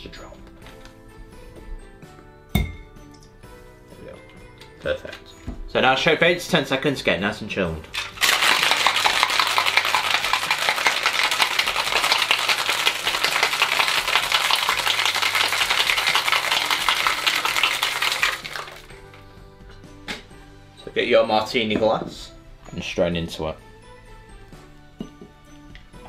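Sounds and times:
soft background music: 0.0 - 26.0
ice rattling in cocktail shaker: 7.9 - 19.2.

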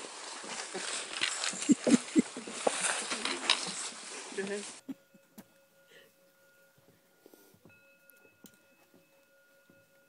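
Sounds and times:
footsteps crunching dry leaves: 0.0 - 4.8.

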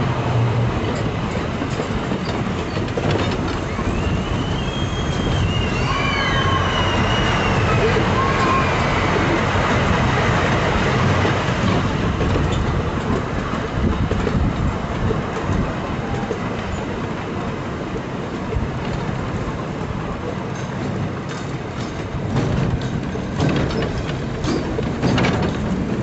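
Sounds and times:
train wheels rumbling on rail: 0.0 - 26.0
clicks over rail joints: 0.8 - 5.6, 9.3 - 26.0.

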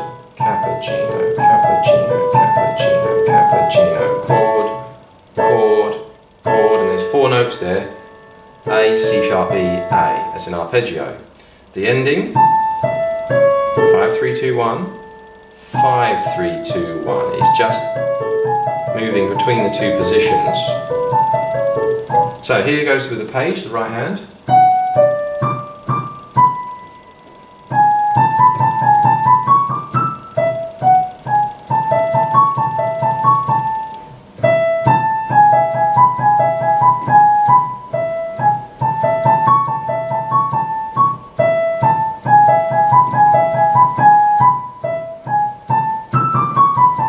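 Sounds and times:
digital piano single-note melody: 0.0 - 11.2, 11.8 - 47.0.

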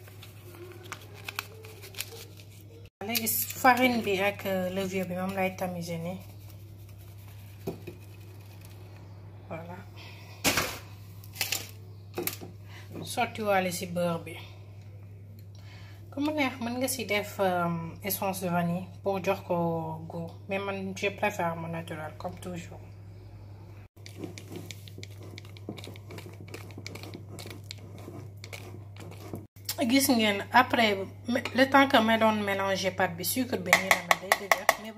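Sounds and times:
flour sifting through mesh sieve: 3.4 - 8.9, 24.0 - 29.5
whisk scraping glass bowl: 24.0 - 29.5.

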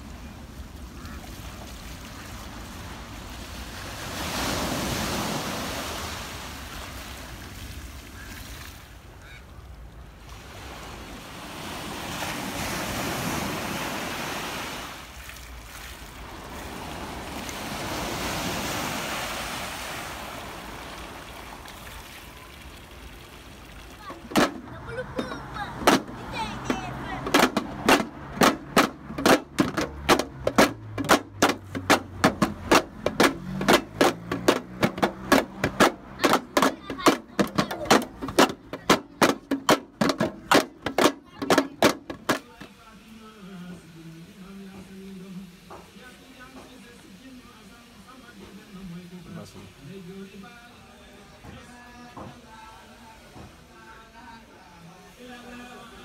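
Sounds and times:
waves breaking on sand beach: 0.0 - 56.0
sticks beating tin and plastic drums: 24.3 - 42.6.

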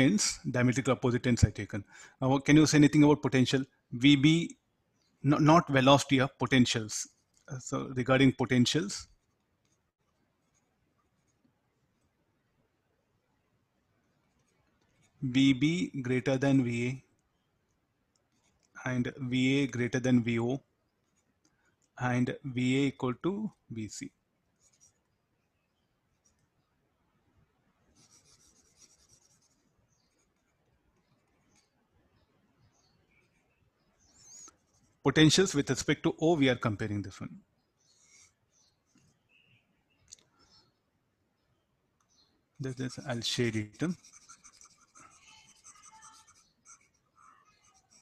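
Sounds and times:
stylus scratching on tablet: 8.2 - 11.6, 18.2 - 19.1, 21.0 - 21.9, 24.6 - 25.2, 26.1 - 26.5, 27.9 - 31.8, 32.8 - 35.8, 37.8 - 38.9, 42.6 - 48.0.

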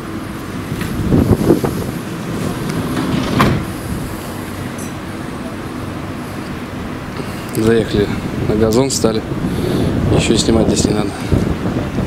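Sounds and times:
van engine idling: 0.0 - 12.0
sliding door thud: 0.7 - 4.7.

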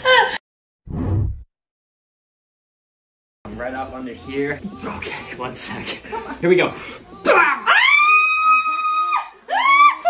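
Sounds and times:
woman squealing: 7.2 - 10.0.

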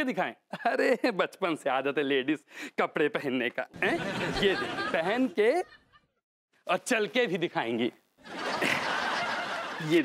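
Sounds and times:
laugh track crowd laughter: 3.8 - 6.2, 8.2 - 10.0.

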